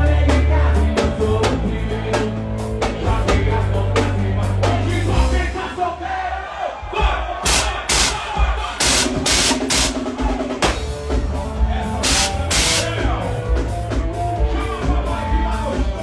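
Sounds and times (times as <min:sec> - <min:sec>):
live band music: 0:00.0 - 0:05.6, 0:07.0 - 0:16.0
drum and cymbal hits: 0:06.9 - 0:16.0.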